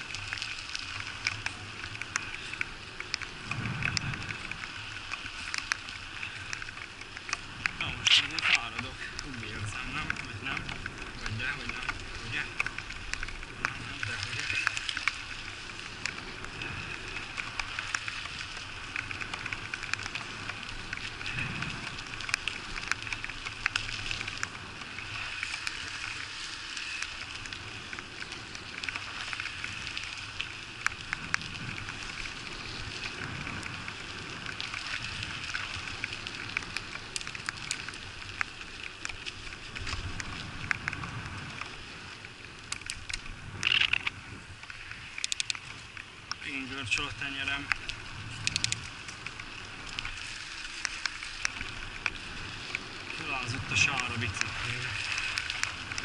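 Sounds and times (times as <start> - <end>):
bicycle tyres hissing on wet road: 0.0 - 56.0
bike clicks and rattles: 0.0 - 56.0.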